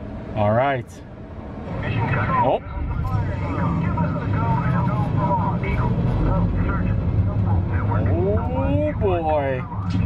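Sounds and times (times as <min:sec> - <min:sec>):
steady low rumble: 0:00.0 - 0:10.0
voices: 0:01.7 - 0:10.0.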